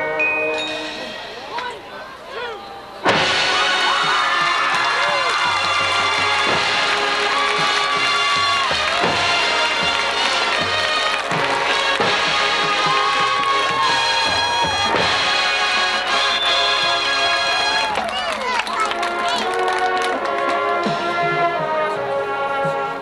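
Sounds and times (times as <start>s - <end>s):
marching band playing: 2.6s - 23.0s
heavy drum strokes: 3.0s - 16.1s.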